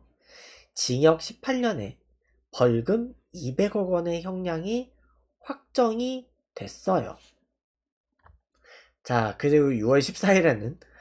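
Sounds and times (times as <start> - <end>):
soft breath: 0.0 - 0.7, 8.6 - 9.0
man speaking: 0.7 - 7.4, 9.0 - 10.9.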